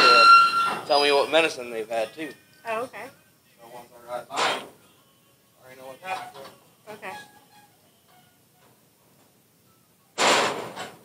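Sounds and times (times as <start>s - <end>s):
metal gate clanging: 0.0s - 1.3s, 4.3s - 4.7s.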